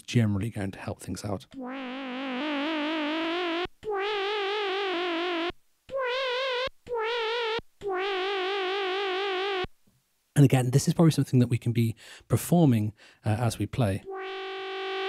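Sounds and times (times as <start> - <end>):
synthesizer lead notes with vibrato: 14.1 - 15.0.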